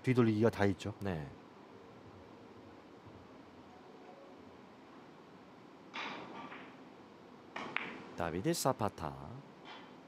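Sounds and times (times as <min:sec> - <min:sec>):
cue striking ball: 0:05.9 - 0:06.8, 0:07.5 - 0:08.1
billiard balls clicking: 0:07.5 - 0:08.1.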